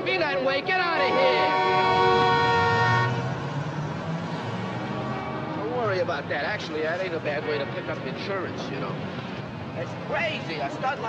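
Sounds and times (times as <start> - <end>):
street traffic rumble: 0.0 - 11.0
car horn: 0.2 - 3.3.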